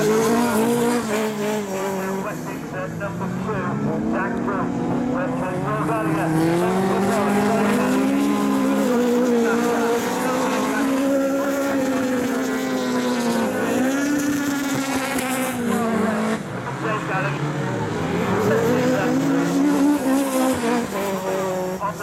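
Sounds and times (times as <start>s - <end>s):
racing car engines revving: 0.0s - 22.0s.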